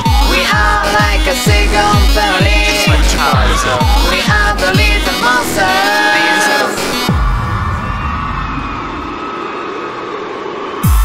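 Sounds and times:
electronic pop music: 0.0s - 7.8s.

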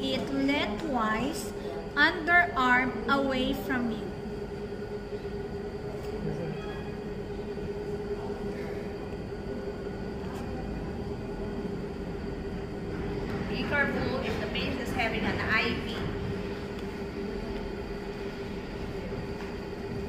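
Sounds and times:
woman speaking: 0.0s - 4.2s, 13.5s - 16.2s
room hum drone: 0.0s - 20.0s.

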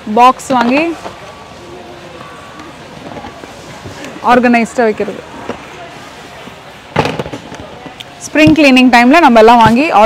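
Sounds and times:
warehouse background noise: 0.0s - 10.0s.

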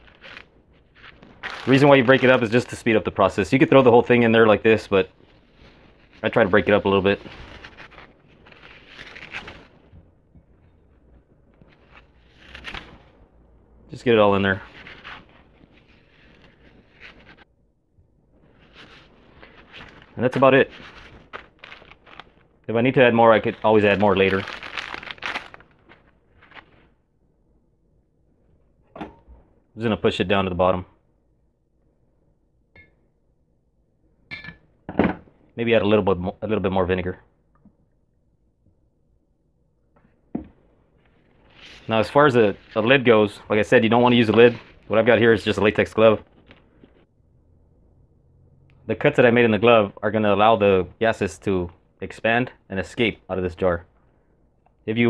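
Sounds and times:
steel wool pulled apart: 5.2s - 9.9s, 11.7s - 13.2s.

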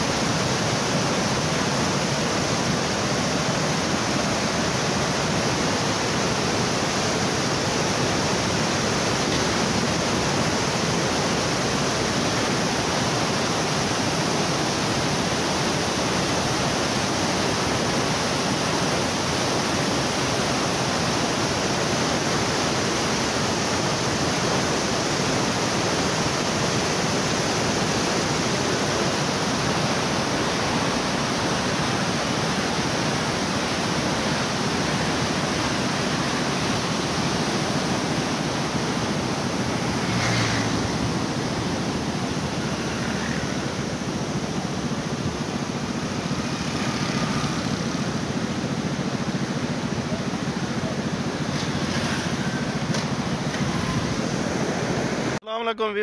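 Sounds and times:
water rushing over spillway: 0.0s - 55.4s.

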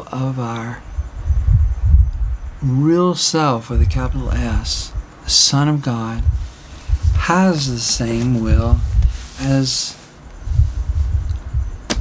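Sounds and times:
low rumble: 0.8s - 2.7s, 3.8s - 5.3s, 6.0s - 11.9s.

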